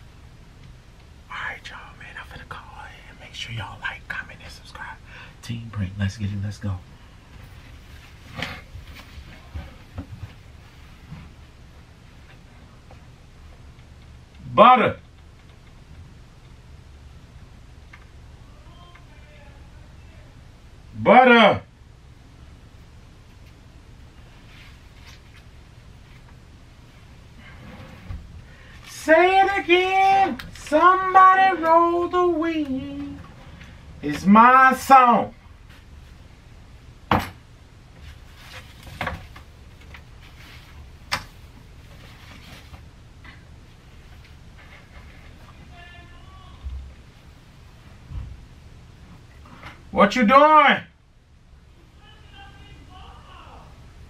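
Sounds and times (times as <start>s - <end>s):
low steady hum: 0.0s - 54.0s
soft rustles and clicks: 7.2s - 14.4s, 23.2s - 29.1s, 37.9s - 45.8s.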